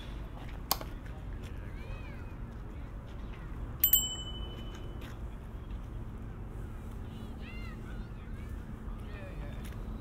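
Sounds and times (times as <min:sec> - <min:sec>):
small metal bell ringing: 0:03.8 - 0:05.0.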